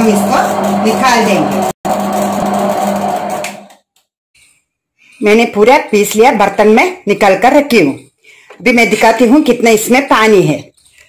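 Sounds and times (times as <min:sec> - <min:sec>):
wet grinder humming: 0:00.0 - 0:03.8.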